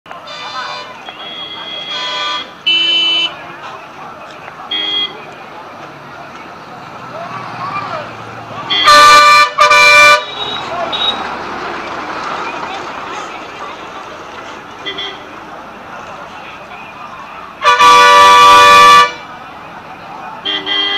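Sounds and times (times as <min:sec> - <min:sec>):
traffic noise: 0:00.0 - 0:20.9
distant voices: 0:00.1 - 0:20.9
vehicle horns honking: 0:00.2 - 0:03.6, 0:04.6 - 0:05.3, 0:08.6 - 0:11.4, 0:14.8 - 0:15.4, 0:17.6 - 0:19.3, 0:20.4 - 0:20.9.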